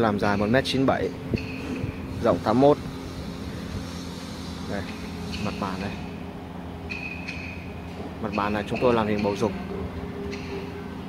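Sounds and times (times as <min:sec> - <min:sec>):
constant tones: 0:00.0 - 0:11.0
low mechanical hum: 0:00.0 - 0:11.0.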